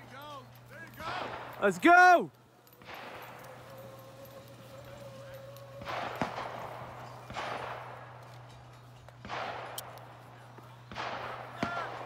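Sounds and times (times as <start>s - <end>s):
distant rifle shots echoing: 2.8s - 3.7s, 5.8s - 8.6s, 9.2s - 12.0s.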